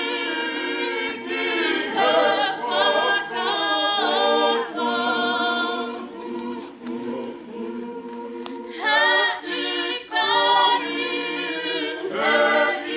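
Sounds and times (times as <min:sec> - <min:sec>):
choir singing in harmony: 0:00.0 - 0:12.9.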